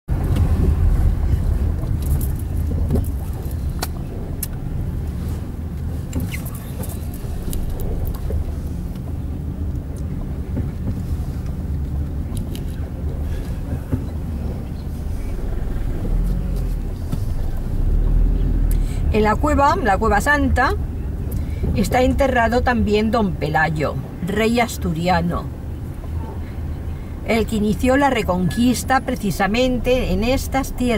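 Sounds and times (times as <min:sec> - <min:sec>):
vehicle engine and road rumble: 0:00.0 - 0:30.9.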